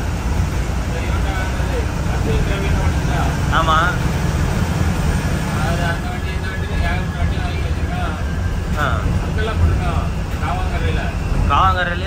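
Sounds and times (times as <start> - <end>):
bus engine and road rumble: 0.0 - 12.0
indistinct talking: 0.0 - 12.0.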